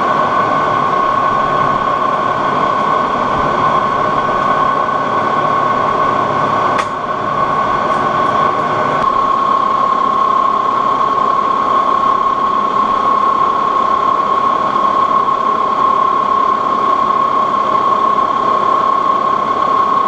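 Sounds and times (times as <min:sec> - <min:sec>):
metal lathe running with whine: 0:00.0 - 0:20.0.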